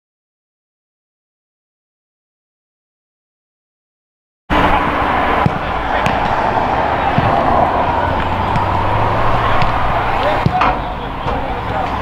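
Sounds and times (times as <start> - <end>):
steady rushing background noise: 4.5 - 12.0
footballs kicked dull thuds: 5.4 - 6.4, 7.0 - 8.9, 9.5 - 11.5.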